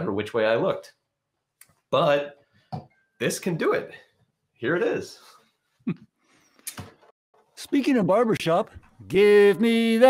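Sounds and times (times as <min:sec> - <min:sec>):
person speaking: 0:07.6 - 0:10.0.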